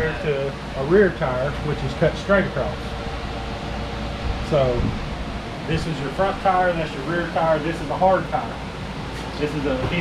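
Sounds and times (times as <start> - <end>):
air conditioner whirring: 0.0 - 10.0.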